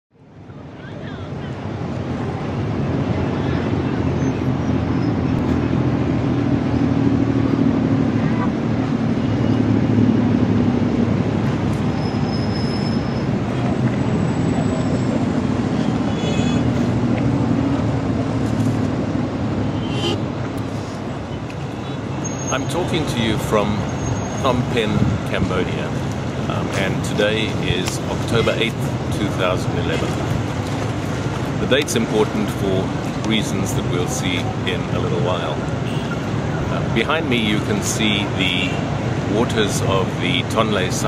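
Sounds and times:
city traffic and engine noise: 0:00.1 - 0:41.0.

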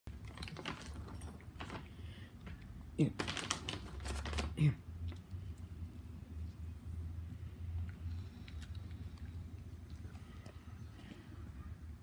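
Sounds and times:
dog crunching treats: 0:02.5 - 0:05.3, 0:07.8 - 0:10.6.

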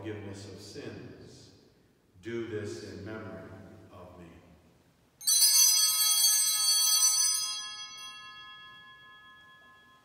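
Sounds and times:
altar bells ringing: 0:05.2 - 0:10.0.

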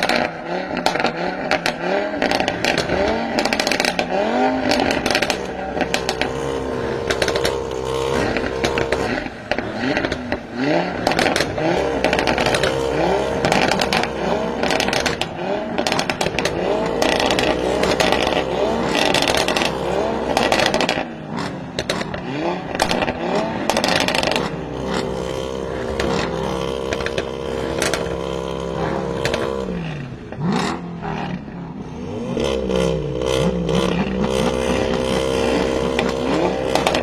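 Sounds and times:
exhaust crackles and pops: 0:00.0 - 0:31.7, 0:32.3 - 0:37.0
car engines revving with pops: 0:00.0 - 0:37.0.

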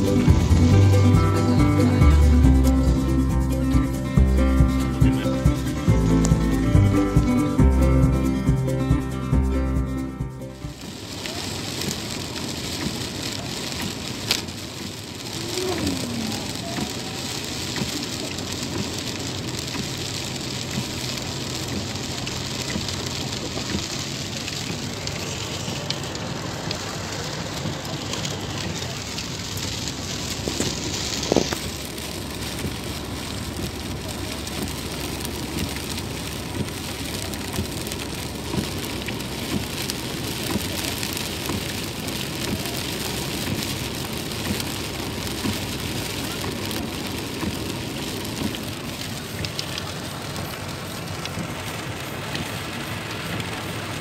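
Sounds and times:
heavy rain on car roof: 0:00.0 - 0:54.0
tyre noise on wet road: 0:00.0 - 0:54.0.

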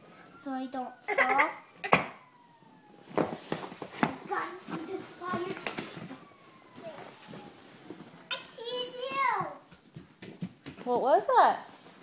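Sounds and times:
faint fire truck siren wailing: 0:00.0 - 0:09.6
knocks and taps on hardwood floor: 0:09.4 - 0:10.9.

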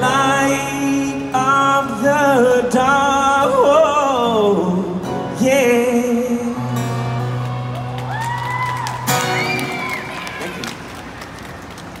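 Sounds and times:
audience cheers: 0:07.3 - 0:10.8
audience applause: 0:07.4 - 0:12.0.

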